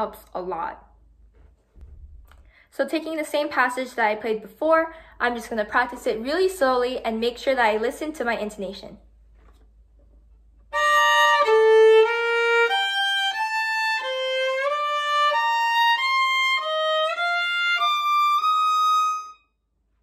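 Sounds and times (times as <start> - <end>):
violin playing slow bowed notes: 10.8 - 19.4.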